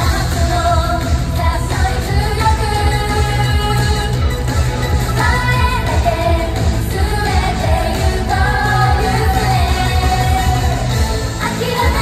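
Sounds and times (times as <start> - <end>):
driving bass drum beat: 0.0 - 12.0
girl group singing: 0.0 - 12.0
pop music over loudspeakers: 0.0 - 12.0.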